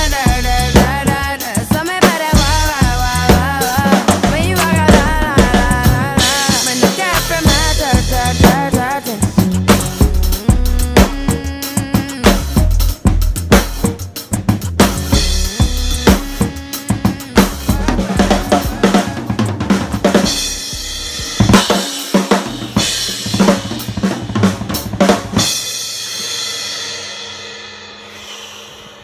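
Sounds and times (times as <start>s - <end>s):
backing track with bass line: 0.0s - 25.8s
acoustic drum kit playing: 0.0s - 27.7s.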